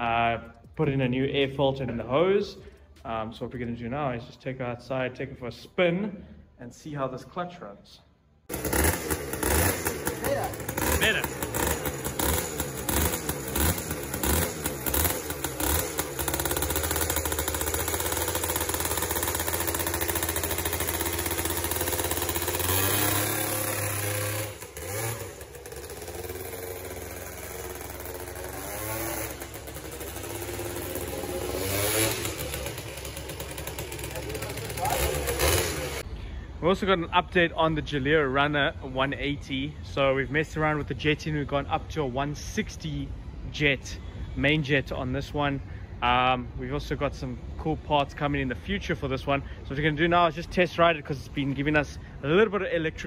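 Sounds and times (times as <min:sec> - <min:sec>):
scooter engine revving: 0:08.5 - 0:36.1.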